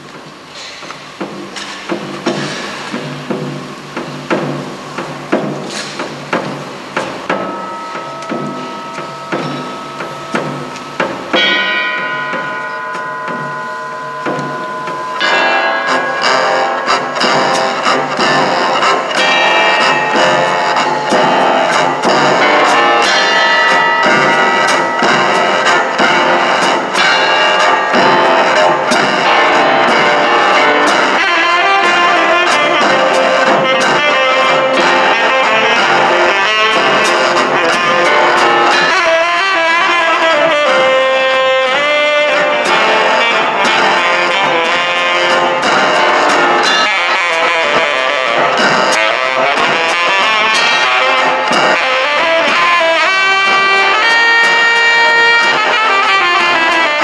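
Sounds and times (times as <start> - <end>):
jazz piano trio playing: 2.3 - 57.0.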